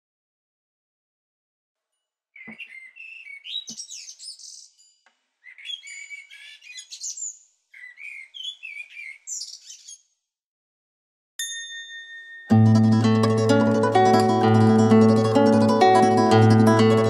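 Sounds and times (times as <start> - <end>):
songbird chirping: 2.4 - 10.2.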